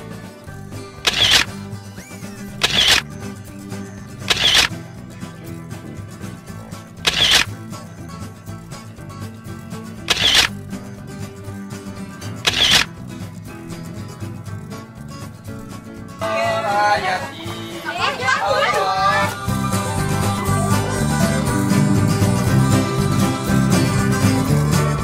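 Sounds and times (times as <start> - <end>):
background music: 0.0 - 25.0
camera shutter clicking: 1.1 - 1.5, 2.6 - 3.0, 4.3 - 4.7, 7.1 - 7.5, 10.1 - 10.6, 12.4 - 12.9.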